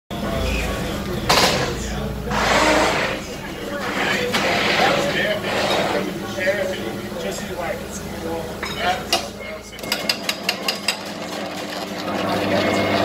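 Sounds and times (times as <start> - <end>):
voices talking: 0.1 - 10.2.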